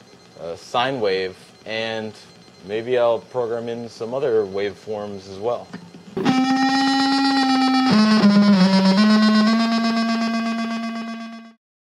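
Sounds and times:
guitar slide down: 6.2s - 11.5s
distorted electric guitar note: 6.2s - 11.6s.

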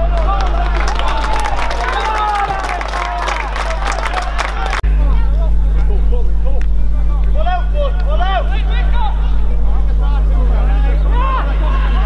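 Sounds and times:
distant shouts of players: 0.0s - 5.7s, 7.3s - 12.0s.

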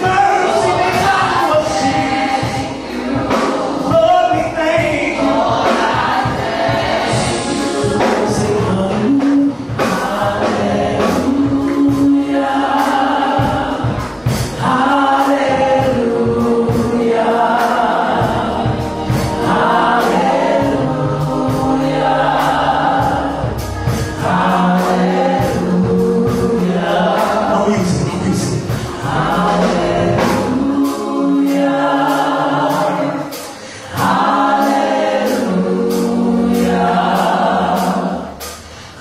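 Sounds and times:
band accompaniment with steady beat: 0.0s - 39.0s
vocal group singing in harmony: 0.0s - 39.0s.

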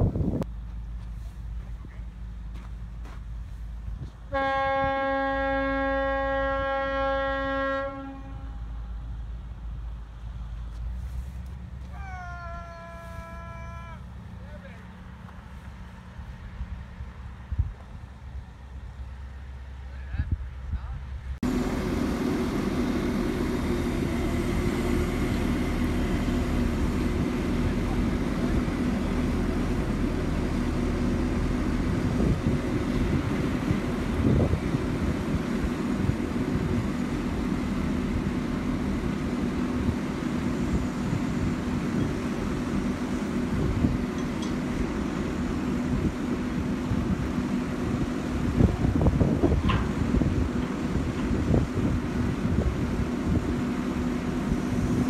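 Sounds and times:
wind rumble on microphone: 0.0s - 0.6s, 16.3s - 18.6s, 30.2s - 38.4s, 39.8s - 55.0s
diesel engine humming: 0.0s - 55.0s
boat horn blast: 4.3s - 8.8s.

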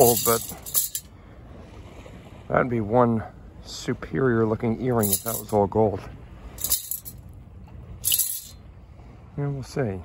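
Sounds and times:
pebbles rattling in metal scoop: 0.0s - 1.0s
low outdoor rumble: 0.0s - 10.0s.

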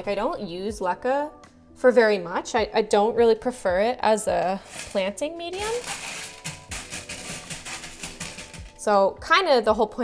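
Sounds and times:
soft background music: 0.0s - 10.0s
clay pebbles rattling in glass tank: 4.6s - 8.8s.

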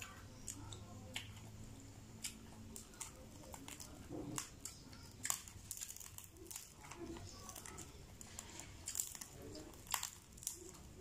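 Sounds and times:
crispy pork skin cracking: 0.0s - 11.0s.

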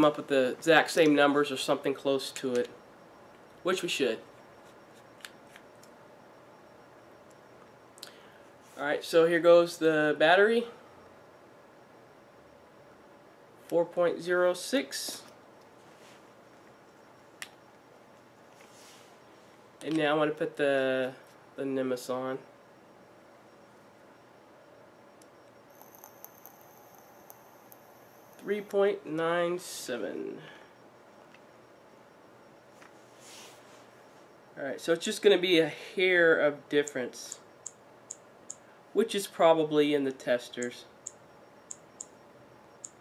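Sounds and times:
faint high-pitched whine: 0.0s - 43.0s.

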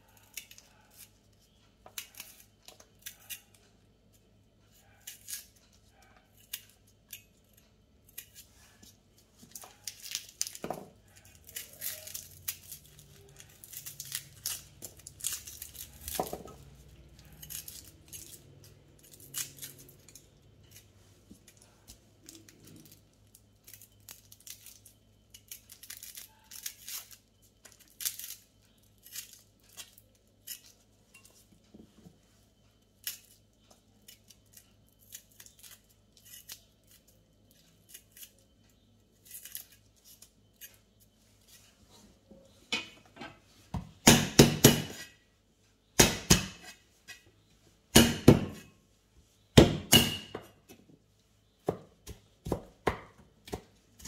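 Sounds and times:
shallot skins crackling: 5.0s - 31.0s, 32.8s - 41.8s.

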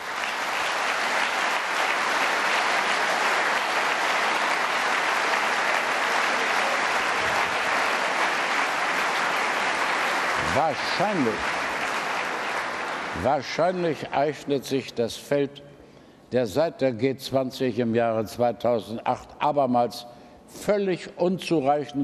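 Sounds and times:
large audience applauding: 0.0s - 14.1s.

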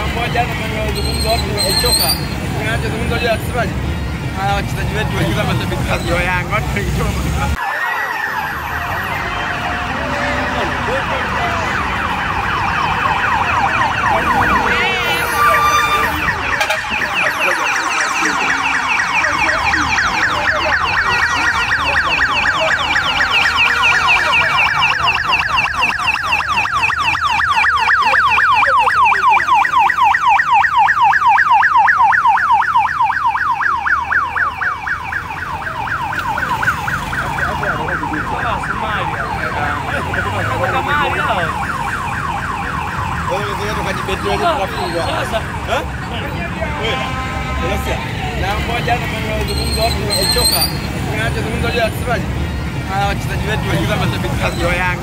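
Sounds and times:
low traffic noise: 0.0s - 55.0s
vehicle siren fast yelp: 7.5s - 46.1s, 49.5s - 51.2s.

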